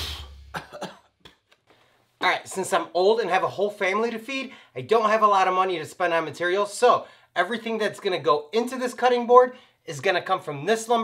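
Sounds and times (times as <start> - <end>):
man coughing: 0.0 - 1.2.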